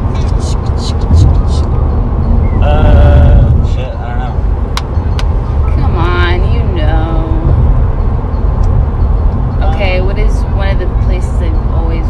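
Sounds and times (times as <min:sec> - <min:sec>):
car cabin road and engine rumble: 0:00.0 - 0:12.0
short vocal sounds: 0:02.6 - 0:04.2.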